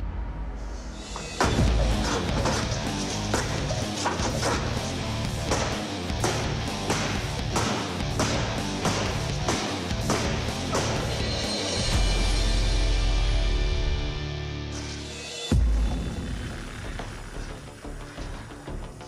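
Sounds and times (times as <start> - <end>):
background music: 0.0 - 19.0.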